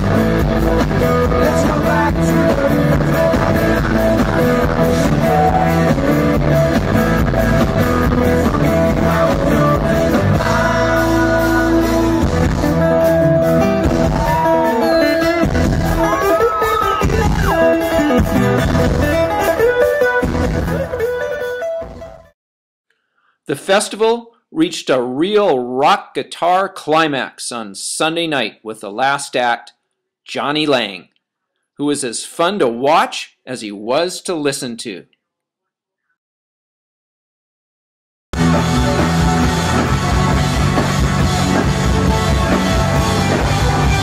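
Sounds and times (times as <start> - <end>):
amplified acoustic guitar lead: 0.0 - 22.2, 38.4 - 44.0
bass guitar: 0.0 - 22.3, 38.4 - 44.0
drum kit: 0.0 - 22.3, 38.4 - 44.0.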